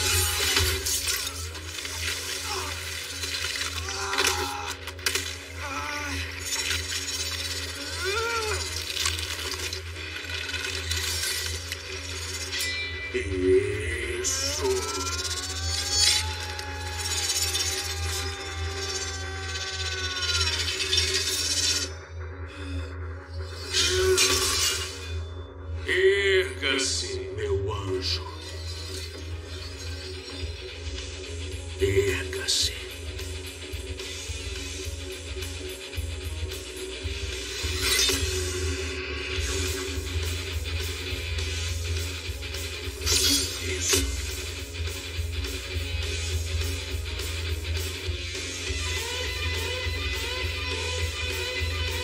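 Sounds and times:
dramatic music: 0:00.0 - 0:52.0.

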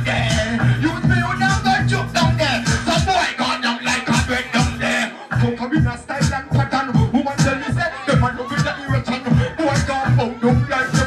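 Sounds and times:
dancehall beat with heavy bass: 0:00.0 - 0:11.0.

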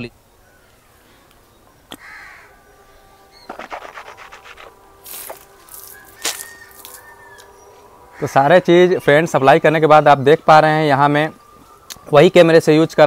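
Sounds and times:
faint bird calls: 0:00.3 - 0:09.2.

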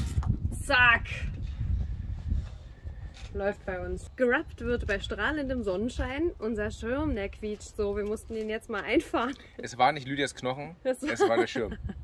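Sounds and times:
wind buffeting microphone: 0:00.0 - 0:08.8, 0:11.6 - 0:12.0.

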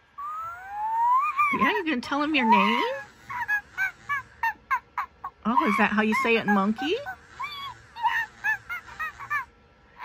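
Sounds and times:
toy monkey calls: 0:00.2 - 0:10.0.

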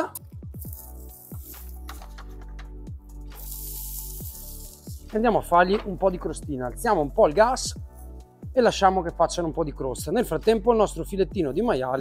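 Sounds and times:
background music: 0:00.0 - 0:12.0
food sizzling on a griddle: 0:03.4 - 0:05.1.

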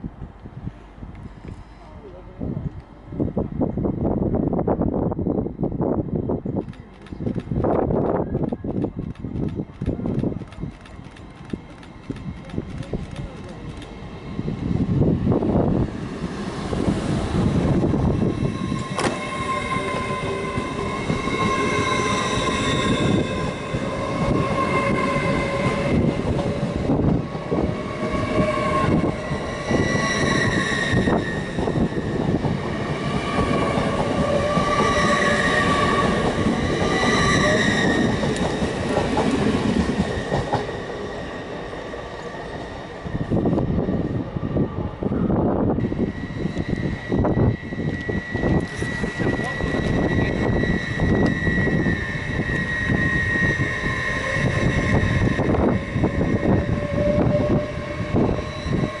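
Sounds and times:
train traction whine: 0:00.0 - 0:59.0
train wheels rumbling on rail: 0:00.0 - 0:59.0.

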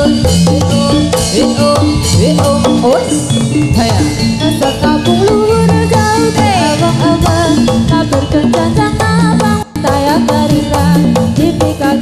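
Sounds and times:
hand drums: 0:00.0 - 0:12.0
sliding melody line: 0:00.0 - 0:12.0
struck metallophones: 0:00.0 - 0:12.0.

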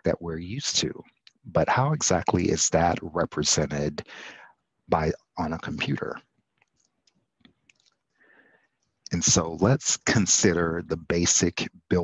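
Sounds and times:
person speaking: 0:00.0 - 0:06.2, 0:09.1 - 0:12.0
faint irregular clicks: 0:06.2 - 0:09.2.

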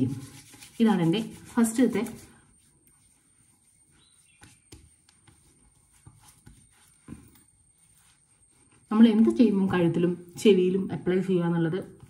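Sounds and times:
hands patting skin: 0:00.0 - 0:08.2.

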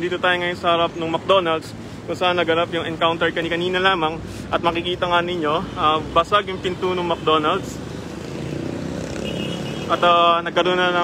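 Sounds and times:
street traffic: 0:00.0 - 0:11.0.

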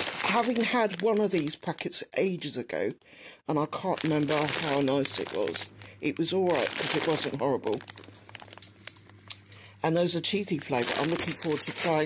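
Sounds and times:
plastic snack bag crinkling: 0:00.0 - 0:02.0, 0:03.6 - 0:09.4, 0:10.3 - 0:12.0.

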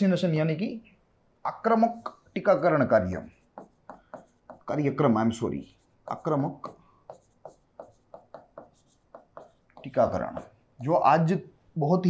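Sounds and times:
stylus tapping and scratching screen: 0:01.5 - 0:11.3.

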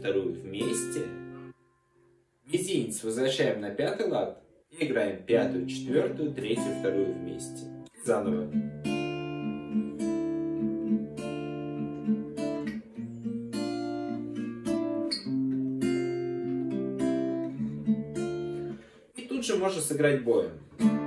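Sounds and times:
acoustic guitar strumming chords: 0:00.0 - 0:01.9, 0:05.3 - 0:19.0, 0:20.6 - 0:21.0.

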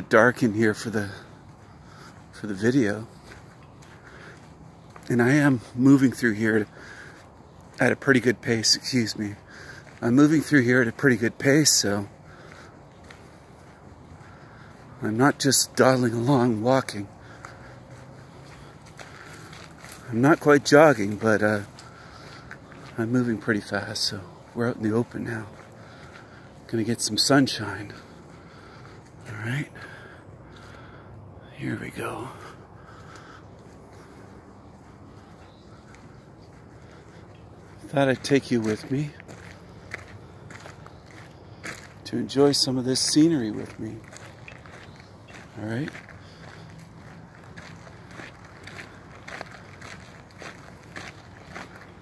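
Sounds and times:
footsteps walking briskly: 0:00.0 - 0:31.0, 0:32.0 - 0:52.0
faint background noise: 0:00.0 - 0:52.0.

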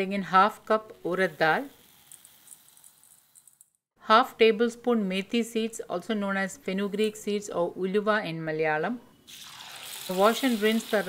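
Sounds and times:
grains pouring into metal bowl: 0:01.6 - 0:03.6.

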